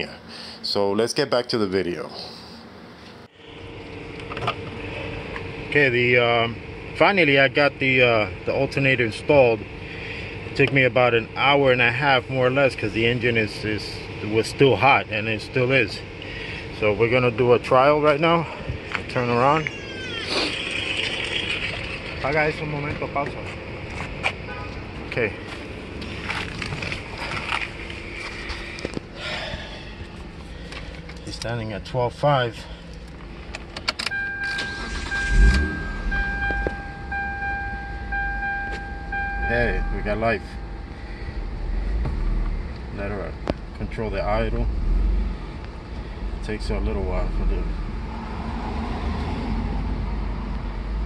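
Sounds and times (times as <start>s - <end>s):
mechanical hum with steady tone: 0.0s - 51.0s.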